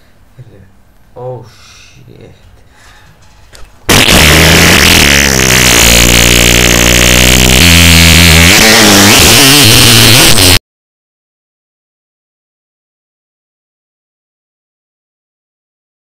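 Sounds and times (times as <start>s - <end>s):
long distorted fart: 3.9s - 10.6s.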